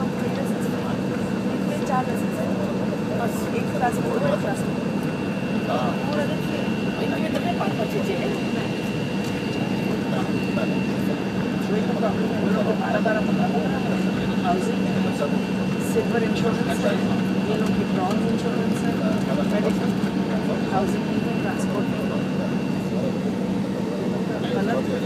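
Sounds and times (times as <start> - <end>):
jet engines idling: 0.0 - 25.0
passenger chatter: 0.0 - 25.0.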